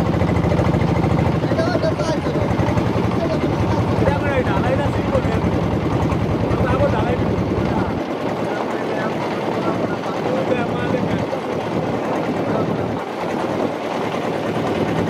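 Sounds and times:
boat engine pulsing: 0.0 - 15.0
voices talking: 0.3 - 14.9.

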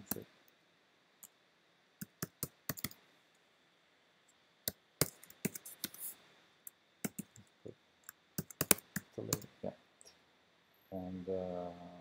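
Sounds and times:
computer keyboard typing: 2.0 - 3.0, 5.0 - 6.0, 7.0 - 7.4, 8.4 - 9.5.

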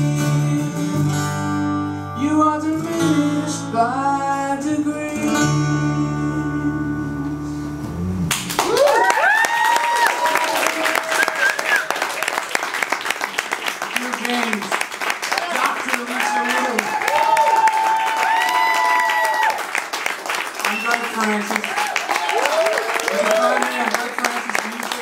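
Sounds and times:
acoustic guitar song: 0.0 - 8.5
audience applause: 8.3 - 25.0
whoops and cheers: 8.6 - 12.2, 16.1 - 19.8, 21.6 - 23.9.

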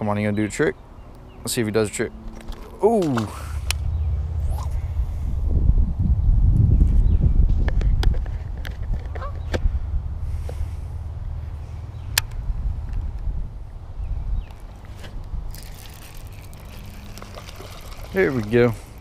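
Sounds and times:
low microphone rumble: 2.6 - 15.6
fish splashing at surface: 15.5 - 19.0.

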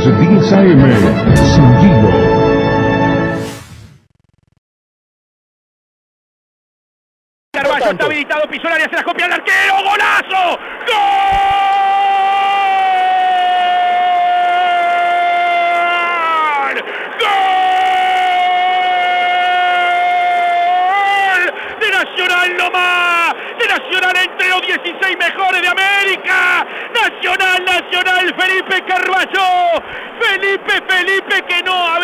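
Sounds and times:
radio commentator shouting: 7.6 - 11.2, 20.9 - 32.0.

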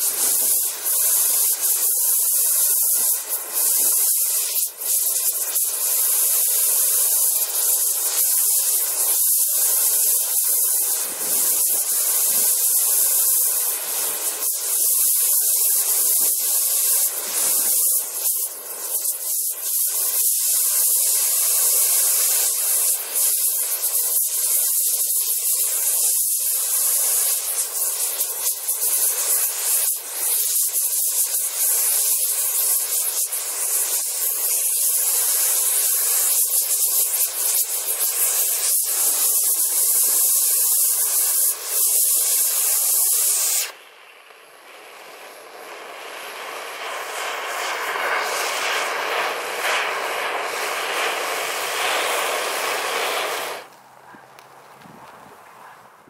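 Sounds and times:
gas torch flame hissing: 0.0 - 55.3.

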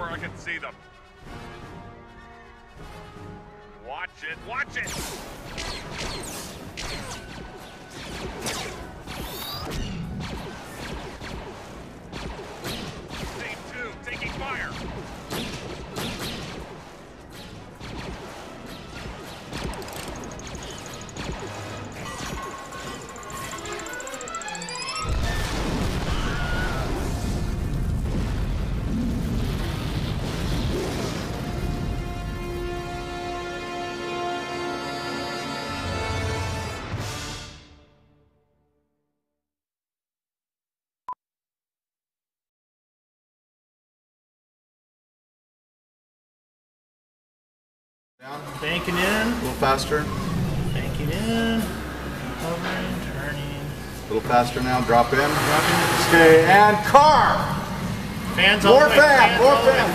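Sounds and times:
sharp bangs and impacts: 4.6 - 23.7, 25.2 - 33.9, 48.6 - 59.9
dramatic orchestral score: 30.6 - 38.2, 48.3 - 59.9
deep rumbling: 56.8 - 59.9.

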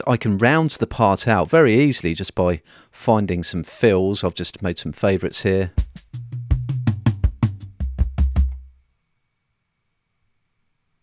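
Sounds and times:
tom drum fill: 5.7 - 8.7.

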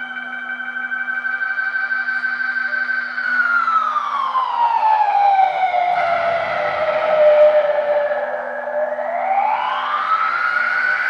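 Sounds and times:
electronic tone gliding down: 3.3 - 11.0.

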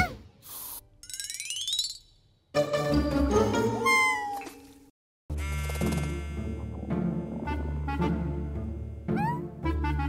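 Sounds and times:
cartoon music: 2.6 - 4.4, 7.4 - 10.0.

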